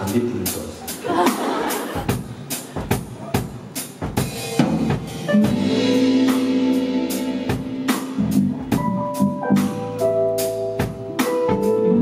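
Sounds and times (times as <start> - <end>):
drum kit beat: 0.0 - 12.0
live band playing: 0.0 - 12.0
held chord: 5.3 - 12.0.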